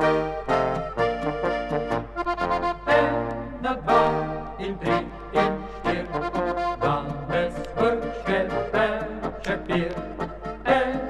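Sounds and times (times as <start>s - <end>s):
folk band with accordion and brass: 0.0s - 11.0s.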